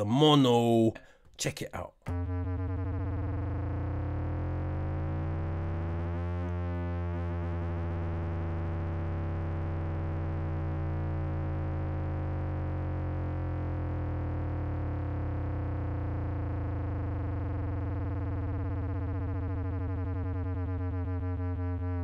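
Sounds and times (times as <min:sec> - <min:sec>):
distorted synth bass note: 0:02.1 - 0:22.0.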